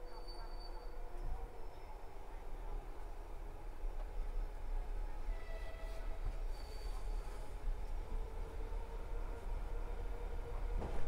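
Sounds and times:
train wheels squealing on rails: 0:00.0 - 0:02.1, 0:05.2 - 0:07.8
low train rumble: 0:00.0 - 0:11.0.

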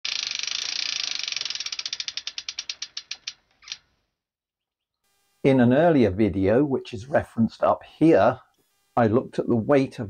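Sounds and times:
bicycle freewheel ticking: 0:00.0 - 0:03.9.

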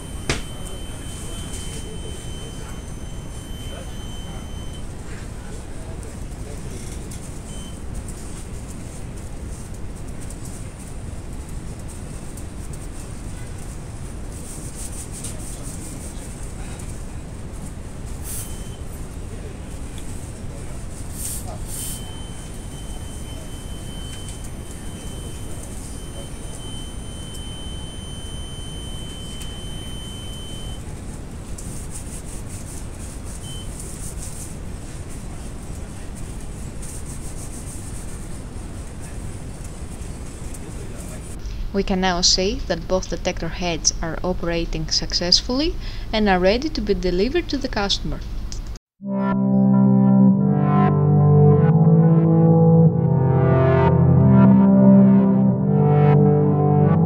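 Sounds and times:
high-pitched alarm tone: 0:00.0 - 0:04.9, 0:21.7 - 0:30.8, 0:49.0 - 0:57.0
short beeps: 0:00.0 - 0:04.9, 0:21.7 - 0:30.8.

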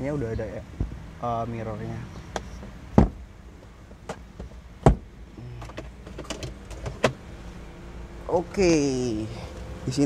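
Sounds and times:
car cabin hum: 0:00.0 - 0:10.0.

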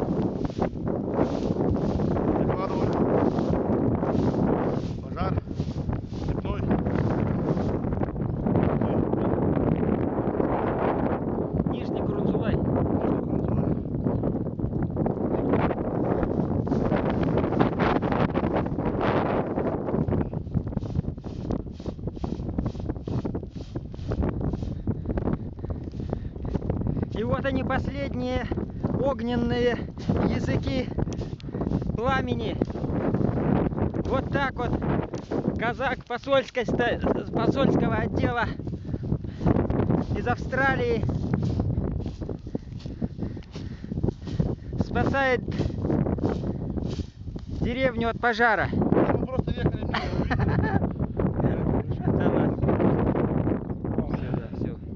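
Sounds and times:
broom swishing on dry grass: 0:00.0 - 0:07.8, 0:20.8 - 0:24.8, 0:39.9 - 0:42.9, 0:43.6 - 0:47.7
wind buffeting microphone: 0:00.0 - 0:54.9.

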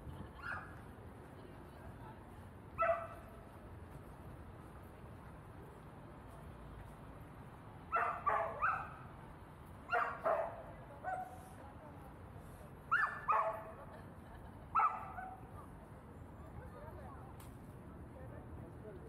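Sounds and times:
dog barking: 0:02.8 - 0:03.2, 0:07.9 - 0:09.0, 0:09.9 - 0:11.4, 0:12.9 - 0:13.7, 0:14.8 - 0:15.4.

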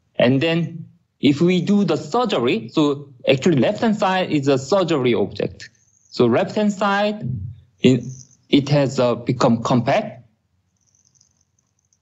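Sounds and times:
faint low hum: 0:00.0 - 0:12.0
faint high hiss: 0:01.2 - 0:11.5.

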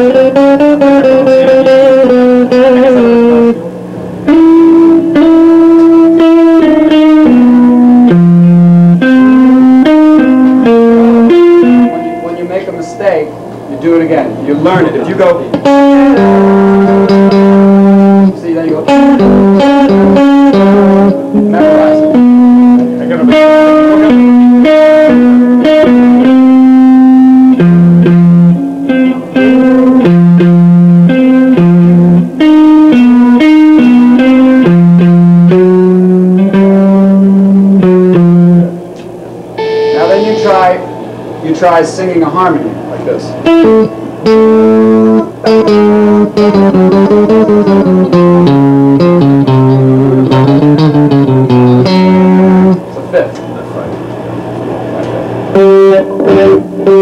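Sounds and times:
electric guitar lead melody: 0:00.0 - 0:41.8, 0:42.7 - 0:57.0.

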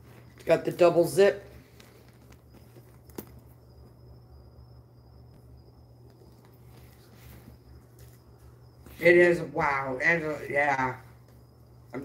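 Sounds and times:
thin high whine: 0:00.0 - 0:12.0.

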